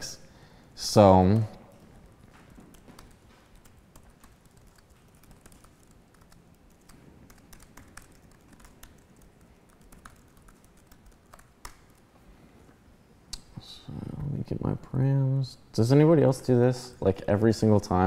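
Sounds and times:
typing on computer keyboard: 1.2 - 12.1.

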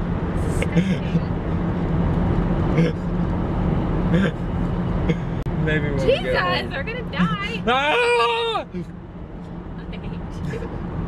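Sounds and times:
road and engine drone in car: 0.0 - 11.0.

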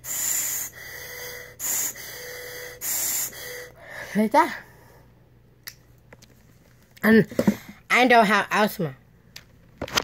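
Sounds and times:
breathing through a spacer mouthpiece: 0.0 - 4.1.

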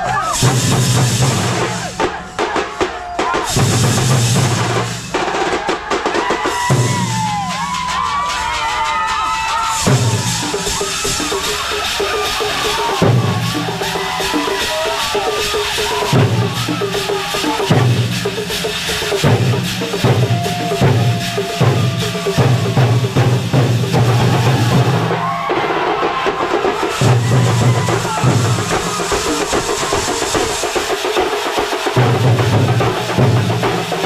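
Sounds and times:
bass drums and snares beaten fast: 0.0 - 34.0
drum band playing: 0.0 - 34.0
wavering melody line: 9.9 - 24.3.

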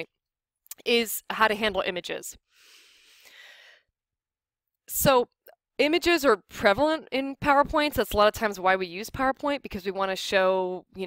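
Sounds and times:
person breathing: 2.5 - 3.9.

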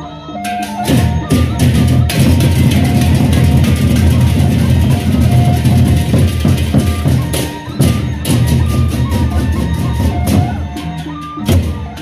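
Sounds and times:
barrel drums beaten fast: 0.6 - 12.0.

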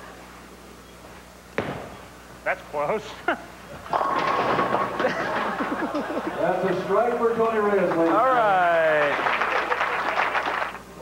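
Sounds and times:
bowling ball striking pins: 3.8 - 5.7.

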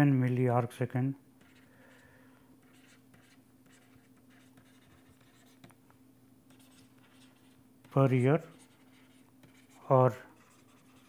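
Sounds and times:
low steady hum: 0.0 - 11.0
stylus scratching on tablet screen: 1.4 - 2.0, 2.6 - 5.8, 6.5 - 11.0.

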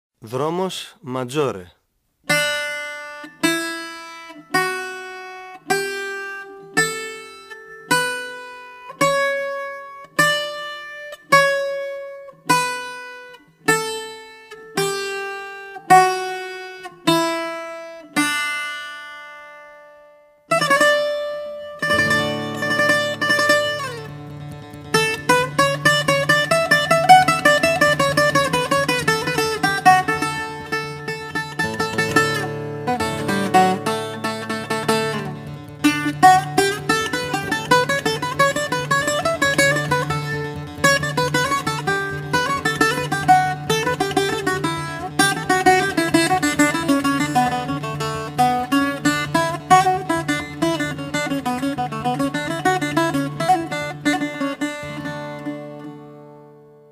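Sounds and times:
bouzouki plucked notes: 2.3 - 56.9.

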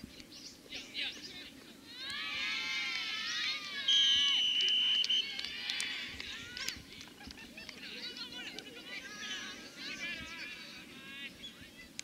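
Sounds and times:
whistle blast: 3.9 - 5.3.

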